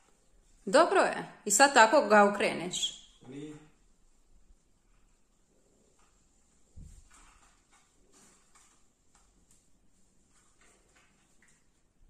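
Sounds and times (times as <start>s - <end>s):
plastic branches clicking and rustling: 5.9s - 12.0s.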